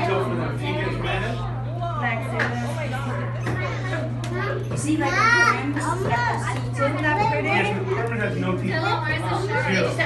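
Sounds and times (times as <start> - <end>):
children chattering and calling out: 0.0 - 10.0.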